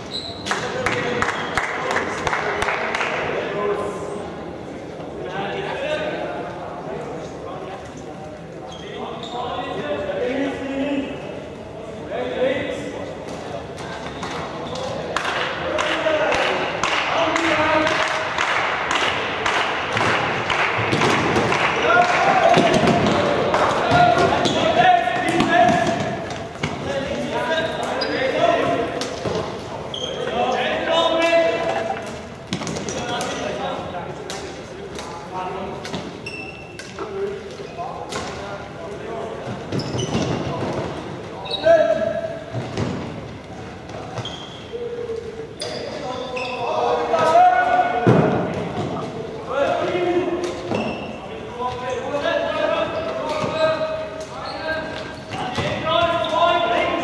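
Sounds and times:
players calling and shouting: 8.0s - 57.0s.

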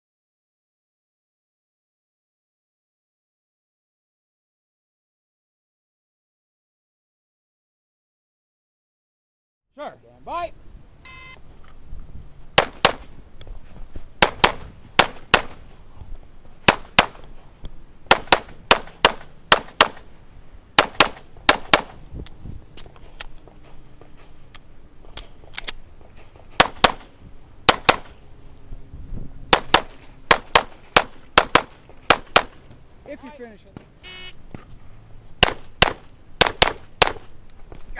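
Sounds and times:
pistol shots: 12.6s - 13.1s, 14.2s - 15.6s, 16.6s - 17.2s, 18.1s - 20.1s, 20.8s - 22.0s, 26.6s - 27.1s, 27.7s - 28.2s, 29.5s - 32.6s, 35.4s - 37.3s.

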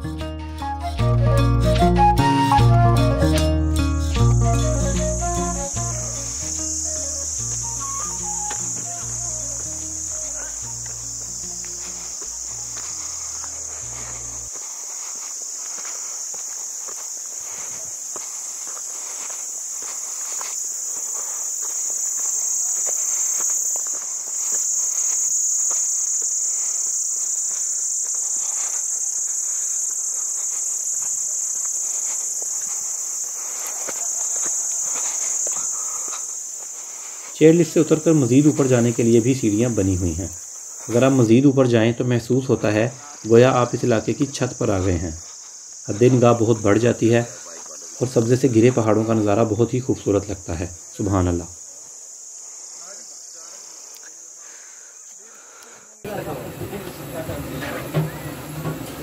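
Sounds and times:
insects chirping: 0.0s - 59.0s
footsteps on dirt and stone: 3.8s - 54.4s, 55.8s - 59.0s
man speaking: 37.4s - 45.2s, 45.9s - 51.5s.

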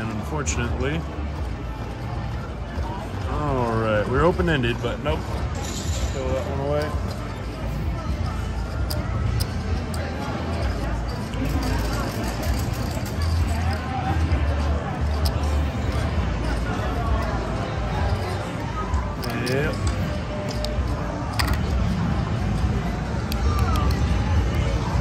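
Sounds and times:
background chatter: 0.0s - 25.0s
cards and chips clicking: 1.4s - 24.8s.

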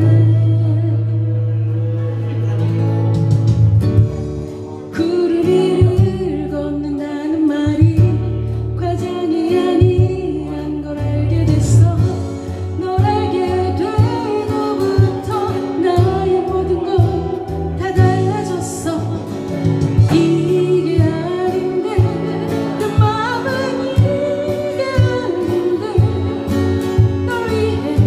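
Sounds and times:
woman singing a ballad: 0.0s - 1.9s, 4.9s - 28.0s
acoustic guitar: 0.0s - 28.0s.

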